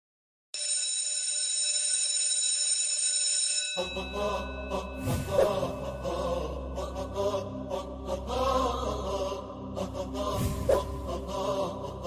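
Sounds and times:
electric bell ringing: 0.6s - 5.2s.

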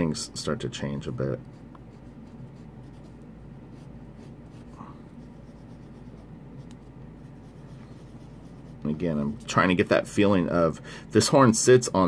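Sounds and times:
low steady hum: 0.0s - 12.0s
pencil scratching on paper: 1.4s - 9.0s.

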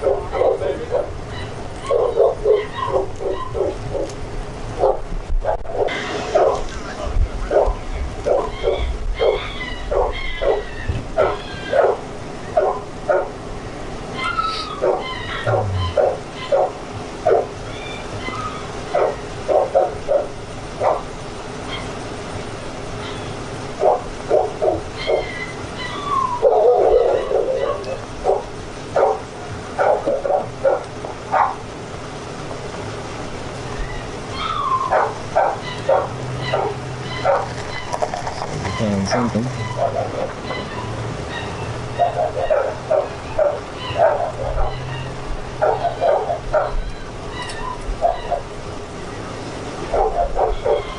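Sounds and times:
dog barking: 0.0s - 4.2s, 4.8s - 6.7s, 7.4s - 13.4s, 14.2s - 17.6s, 18.3s - 21.1s, 23.8s - 31.6s, 34.4s - 46.8s, 48.0s - 48.5s, 49.9s - 50.9s.

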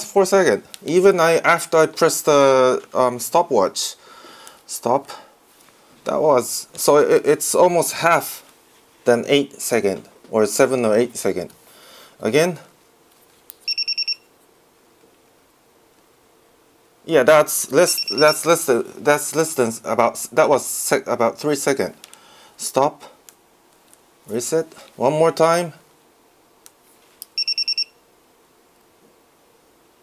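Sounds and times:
multimeter short high beeps: 13.6s - 14.3s, 17.8s - 18.5s, 27.3s - 28.0s.

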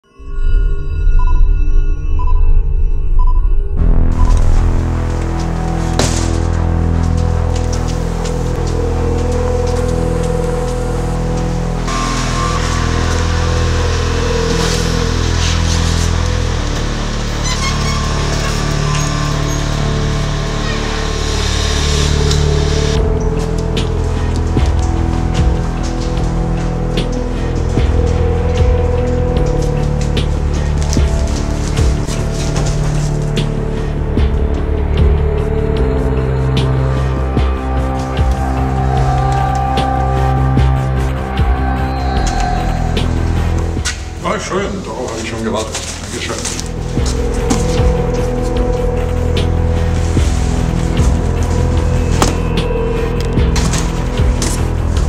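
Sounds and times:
low bass notes: 0.0s - 55.0s.

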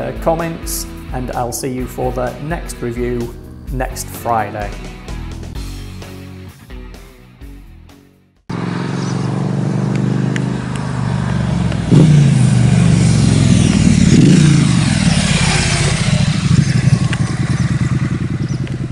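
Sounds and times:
motorcycle riding past: 8.5s - 18.9s.

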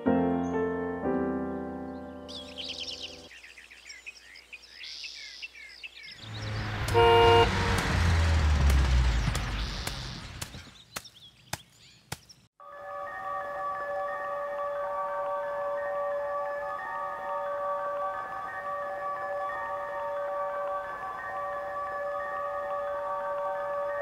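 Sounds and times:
birds chirping: 0.0s - 12.5s
truck engine rumble and road noise: 6.2s - 11.0s
truck horn blast: 6.4s - 9.1s.

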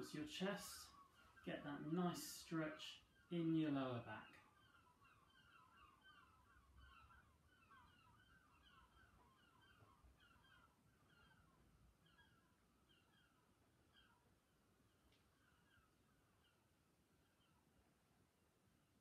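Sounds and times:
faint bird chirping: 0.0s - 19.0s.

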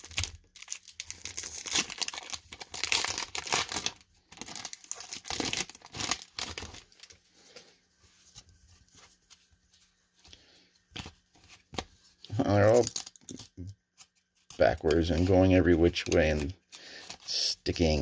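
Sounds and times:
wrapper tearing and crinkling: 0.0s - 7.2s, 12.4s - 13.6s
cards rustling and clicking: 8.2s - 18.0s.

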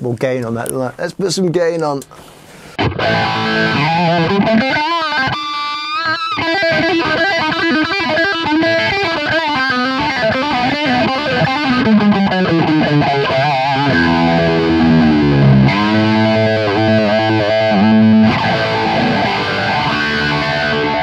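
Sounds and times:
electric guitar with phaser: 2.7s - 21.0s.

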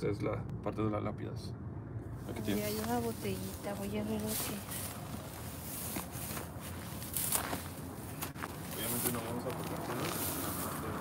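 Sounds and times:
dry brush rustling: 2.2s - 11.0s
footsteps crunching: 2.3s - 11.0s.

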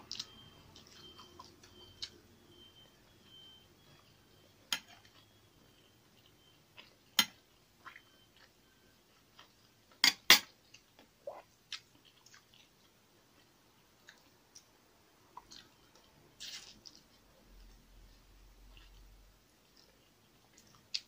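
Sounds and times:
chewing sounds: 0.0s - 2.2s, 10.6s - 14.7s, 15.4s - 21.0s.

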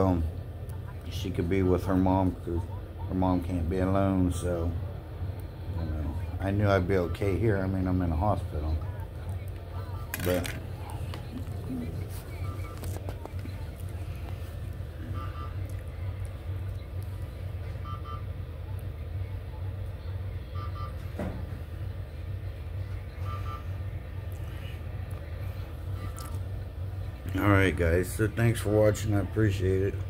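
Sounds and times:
low hum: 0.0s - 30.0s.

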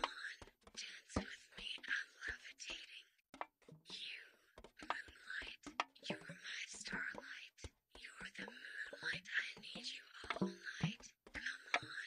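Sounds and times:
person whispering: 0.0s - 3.2s, 3.9s - 12.0s.

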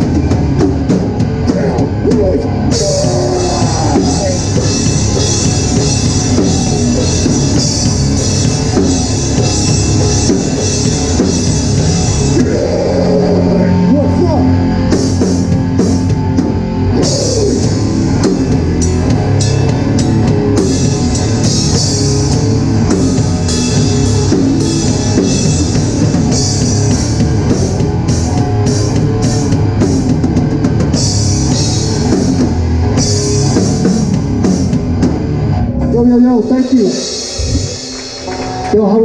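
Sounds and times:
distorted electric guitar: 0.0s - 39.0s
drum kit: 0.0s - 39.0s.

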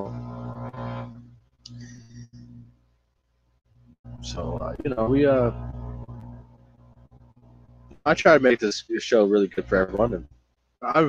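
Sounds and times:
man humming: 0.0s - 2.7s, 4.1s - 6.5s.

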